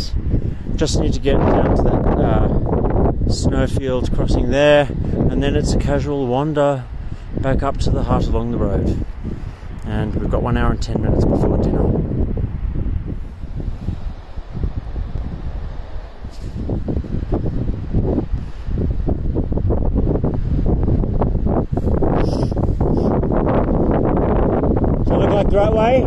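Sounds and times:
wind on microphone: 0:00.0 - 0:26.0.

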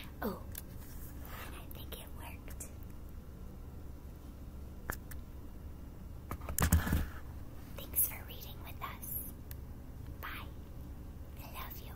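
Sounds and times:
woman whispering: 0:01.2 - 0:02.8, 0:07.8 - 0:09.4, 0:10.2 - 0:10.6, 0:11.4 - 0:11.9.

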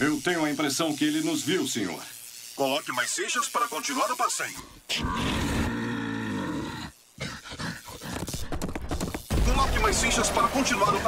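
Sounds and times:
robotic bull roar: 0:04.9 - 0:07.7.

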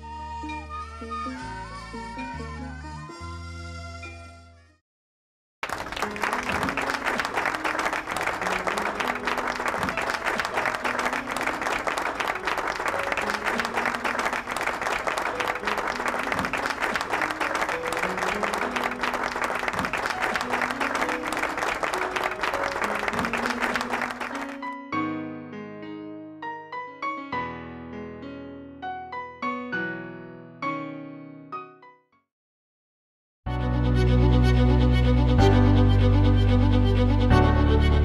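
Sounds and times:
audience applauding: 0:05.6 - 0:24.8.

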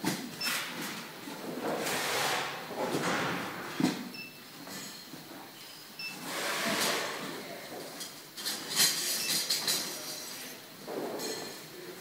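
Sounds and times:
clattering and clinking: 0:07.8 - 0:11.7.

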